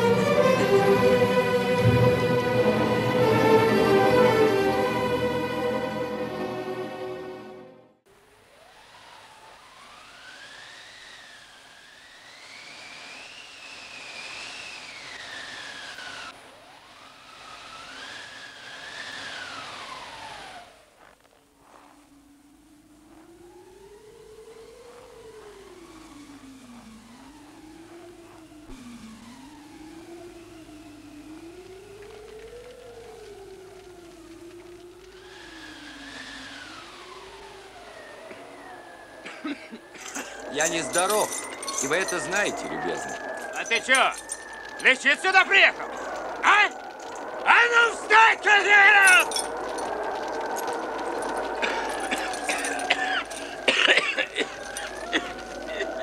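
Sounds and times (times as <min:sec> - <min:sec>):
wind howling: 0:00.0 - 0:56.0
low wavering moan: 0:49.2 - 0:56.0.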